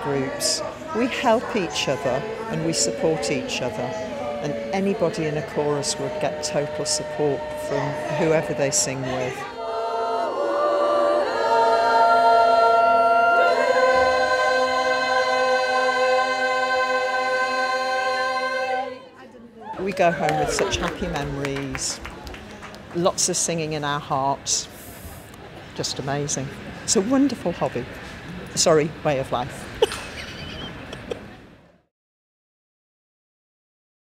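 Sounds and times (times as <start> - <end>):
women singing close harmony: 0.0 - 19.2
large hall background noise: 0.0 - 31.9
woman laughing: 29.8 - 31.4.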